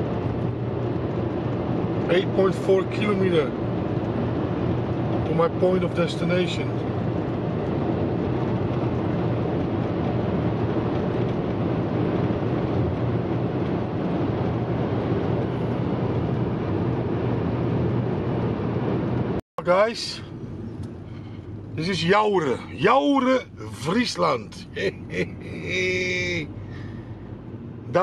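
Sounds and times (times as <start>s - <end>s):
car road and engine noise: 0.0s - 28.0s
person speaking: 21.7s - 26.5s.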